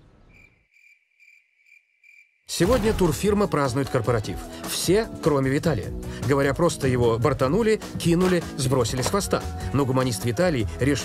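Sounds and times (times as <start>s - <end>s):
faint cricket chirping: 0.0s - 2.5s.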